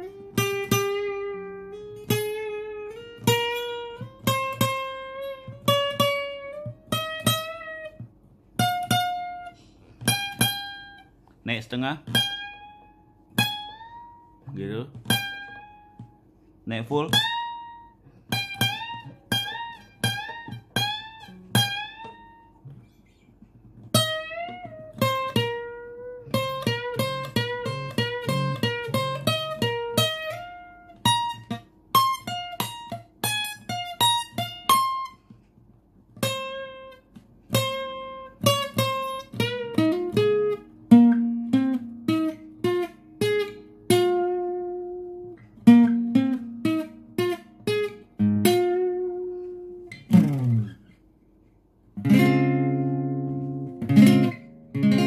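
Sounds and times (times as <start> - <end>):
acoustic guitar lead line: 0.0 - 55.0.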